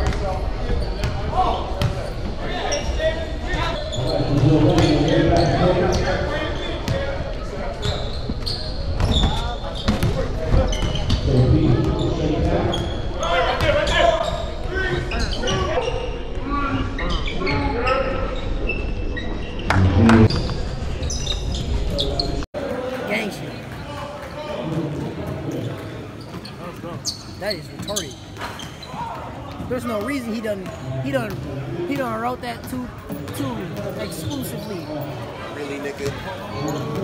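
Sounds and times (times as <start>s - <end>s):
echoing indistinct voices: 19.6s - 37.0s.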